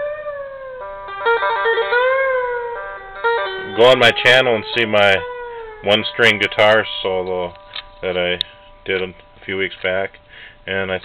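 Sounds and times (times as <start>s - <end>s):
slide electric string instrument: 0.0s - 10.3s.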